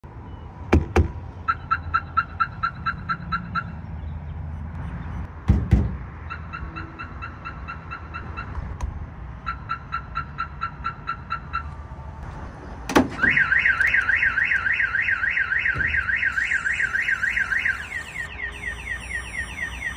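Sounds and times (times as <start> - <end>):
knocks on truck body: 5.4 - 6.0
alarm warning chirps: 13.2 - 19.9
warbling alarm siren: 13.2 - 19.9.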